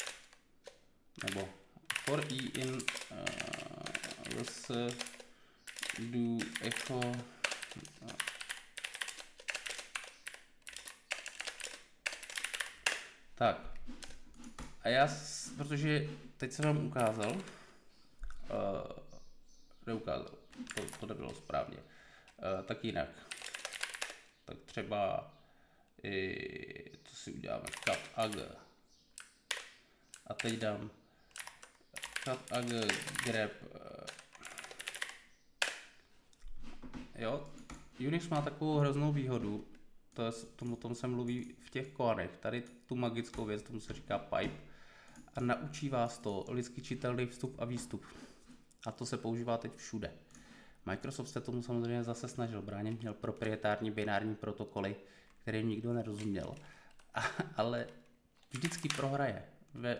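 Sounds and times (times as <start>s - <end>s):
typing on computer keyboard: 0.0s - 13.0s, 20.6s - 21.1s, 23.3s - 24.2s, 27.6s - 28.5s, 29.2s - 30.7s, 31.3s - 35.8s, 57.9s - 59.1s
keyboard keystrokes: 31.3s - 33.4s, 34.1s - 35.8s.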